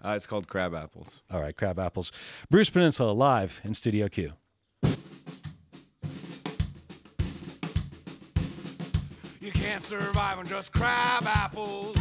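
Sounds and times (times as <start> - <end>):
snare hi-hat and cymbal: 4.8 - 12.0.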